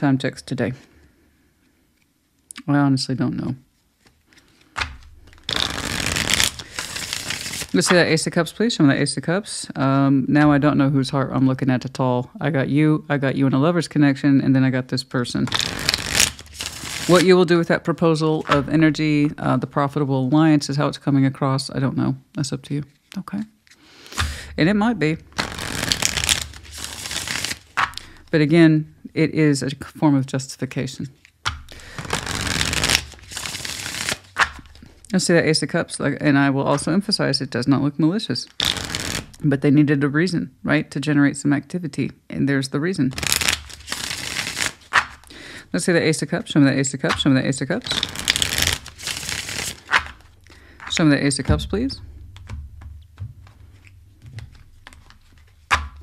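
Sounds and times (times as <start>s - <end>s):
cards being shuffled: 3.7s - 8.2s, 15.4s - 17.4s, 18.4s - 19.4s, 22.9s - 28.1s, 31.2s - 35.0s, 38.5s - 39.4s, 43.1s - 45.3s, 47.1s - 56.0s.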